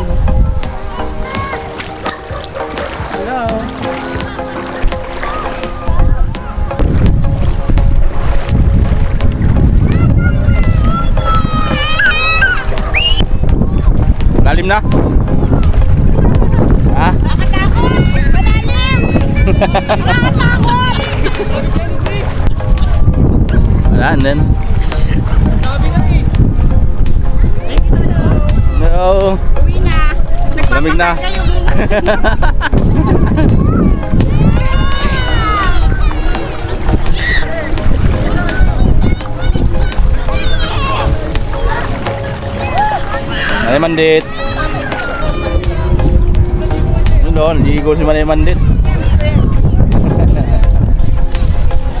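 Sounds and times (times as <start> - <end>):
people's voices: 0.0 - 52.0
wind buffeting microphone: 0.0 - 52.0
child shouting: 1.2 - 1.7, 9.9 - 13.2, 17.8 - 19.7, 33.6 - 36.3, 38.4 - 41.1, 42.7 - 45.7
high-pitched voices squealing: 37.1 - 37.6.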